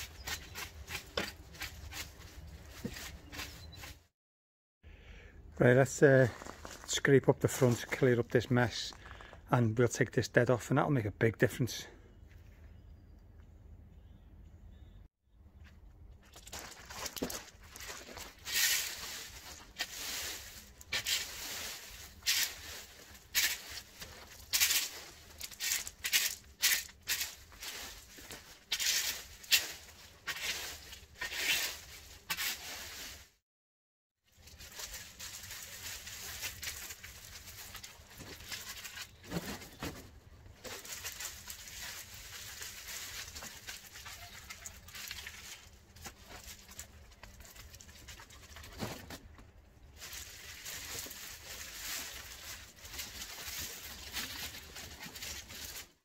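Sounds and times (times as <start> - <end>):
dry leaves scraping on gravel: 0.0 - 3.9, 5.8 - 9.3, 16.4 - 33.3, 34.3 - 39.8, 40.6 - 48.7, 49.8 - 56.0
crackling leaf rustle: 16.4 - 33.4, 34.3 - 39.7, 40.5 - 48.8, 49.8 - 56.0.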